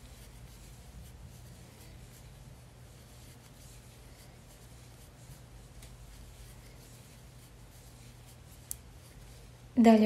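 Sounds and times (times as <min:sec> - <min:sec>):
crochet hook rustling yarn: 0:00.0 - 0:10.0
steady low hum: 0:00.0 - 0:10.0.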